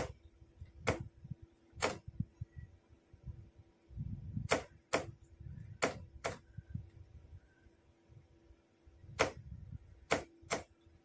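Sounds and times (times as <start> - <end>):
morse key knocks and clicks: 4.4 - 6.6, 9.1 - 10.8.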